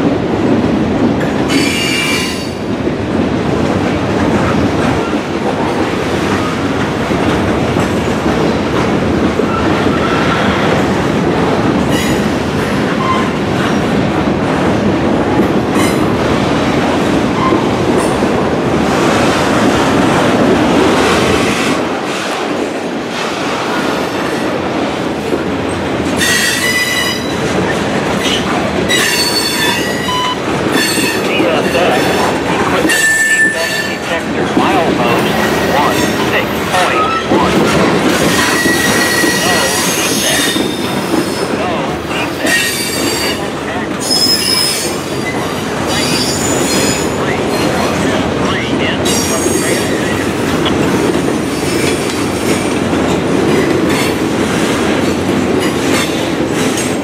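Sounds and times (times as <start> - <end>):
freight train rolling past: 0.0 - 57.0
train wheels squealing: 38.3 - 41.4, 44.0 - 47.1.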